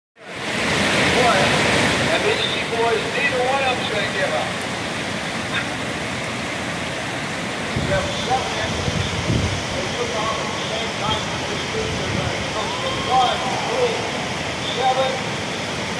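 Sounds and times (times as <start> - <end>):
whitewater rapids roaring: 0.2 - 15.9
distant voices calling out: 0.8 - 15.9.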